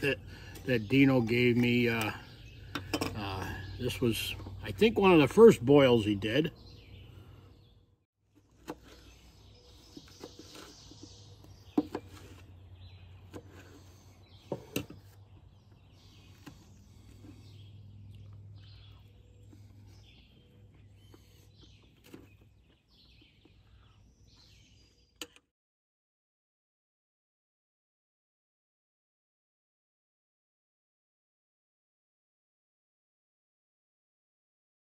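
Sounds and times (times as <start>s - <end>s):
small birds chirping: 0.0s - 25.5s.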